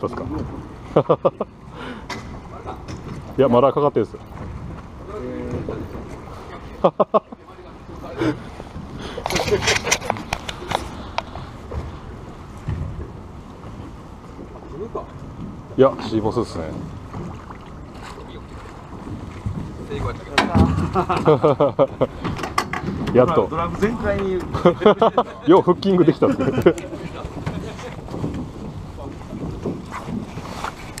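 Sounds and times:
boat noise: 0.0s - 31.0s
faint water: 0.0s - 31.0s
wind rumble on microphone: 7.8s - 25.0s, 25.6s - 31.0s.

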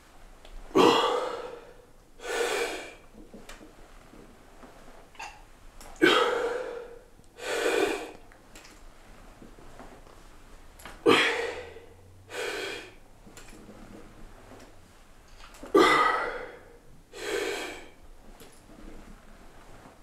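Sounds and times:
man forceful exhale: 6.0s - 8.1s, 11.1s - 13.0s, 15.8s - 18.0s
man drawing in breath: 11.1s - 13.0s.

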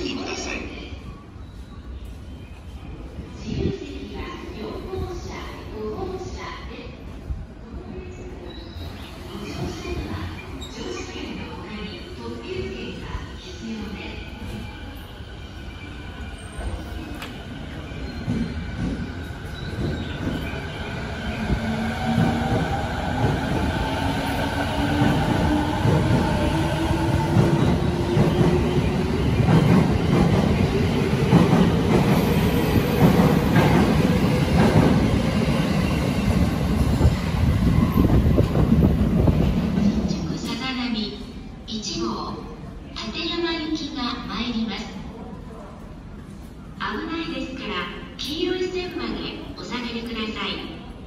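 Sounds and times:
train wheels rumbling on rail: 16.1s - 40.5s.

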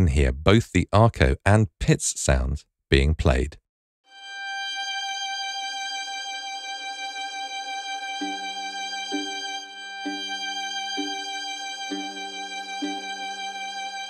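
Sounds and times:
sustained bowed violin note: 4.1s - 14.0s
pizzicato violin double stops: 8.1s - 14.0s.

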